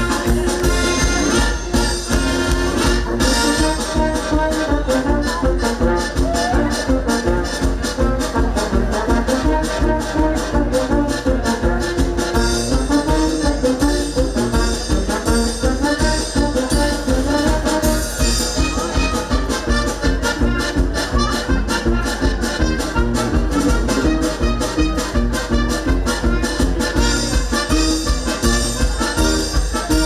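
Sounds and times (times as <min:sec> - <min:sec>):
brass band playing dance tune: 0:00.0 - 0:30.0.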